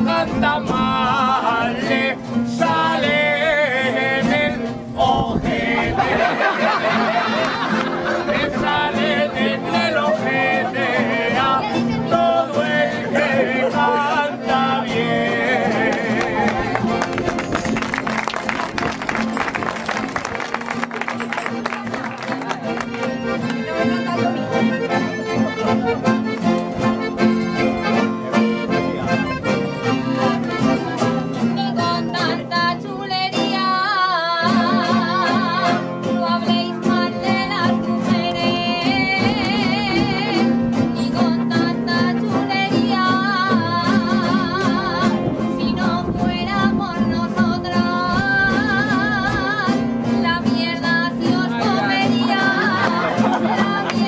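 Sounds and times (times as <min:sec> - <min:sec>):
accordion and guitars playing: 0:00.0 - 0:54.0
woman singing with vibrato: 0:31.6 - 0:54.0.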